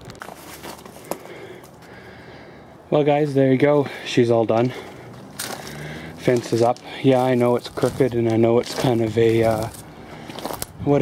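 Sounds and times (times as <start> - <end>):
man speaking: 2.9 - 4.9, 6.2 - 9.8.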